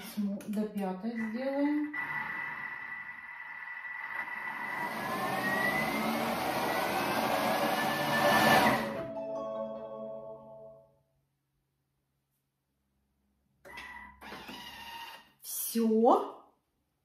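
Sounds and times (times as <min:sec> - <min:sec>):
food processor motor whining: 0:01.2 - 0:09.0, 0:13.6 - 0:15.3.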